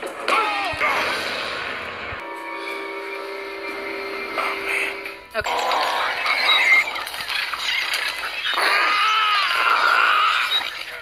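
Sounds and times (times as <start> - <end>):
action film noise: 0.0 - 11.0.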